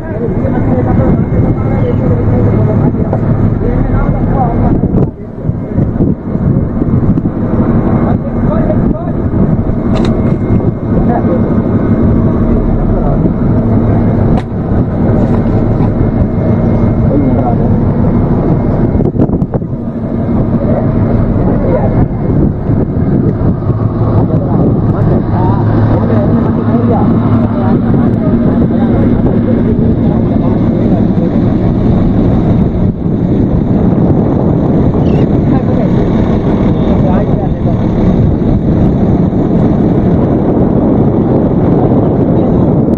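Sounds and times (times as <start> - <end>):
men talking indistinctly: 0.0 - 23.3, 23.9 - 32.1, 35.0 - 38.2
boat engine droning: 0.0 - 42.9.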